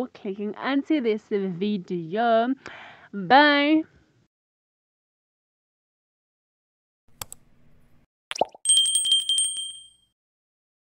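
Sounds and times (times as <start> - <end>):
mouse click: 7.2 - 7.4
notification bell ringing: 8.6 - 10.0.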